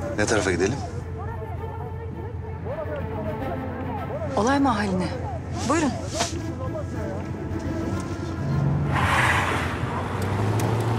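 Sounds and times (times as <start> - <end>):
car driving past: 8.4 - 10.9.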